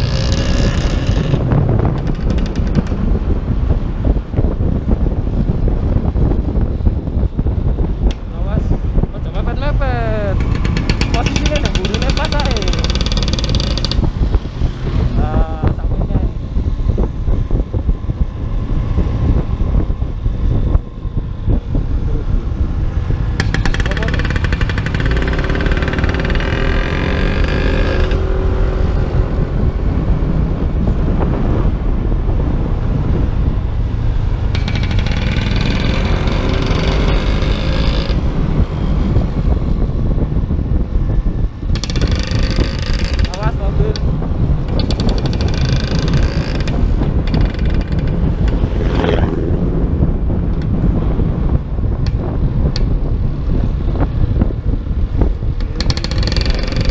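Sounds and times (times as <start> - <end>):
wind buffeting microphone: 0.0 - 56.9
scooter engine rumble: 19.8 - 29.0, 34.1 - 56.9.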